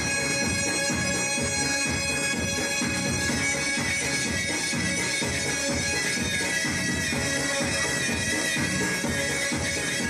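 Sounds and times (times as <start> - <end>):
reedy wind instrument melody: 0.0 - 10.0
steady drone: 0.0 - 10.0.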